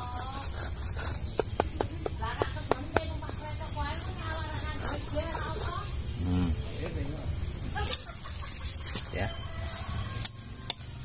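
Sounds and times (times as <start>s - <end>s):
plastic container tapping on bark: 1.2s - 3.6s.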